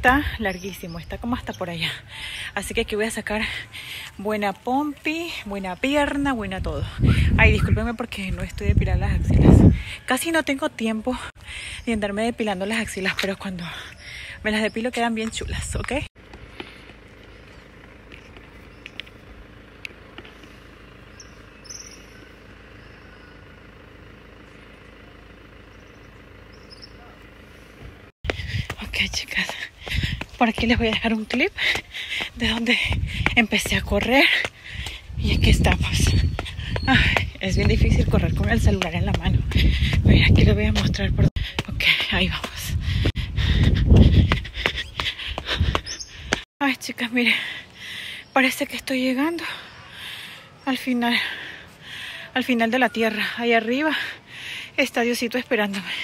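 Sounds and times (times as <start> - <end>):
low background rumble: 15.4 - 46.5
footsteps running up concrete stairs: 28.2 - 46.5.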